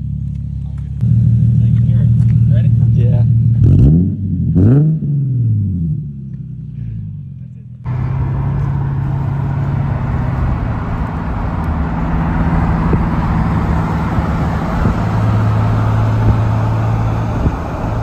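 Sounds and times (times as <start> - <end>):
car engine idling: 0.0 - 3.7, 6.2 - 18.0
engine and road noise inside car: 0.0 - 18.0
engine revving: 1.0 - 6.4, 7.9 - 18.0.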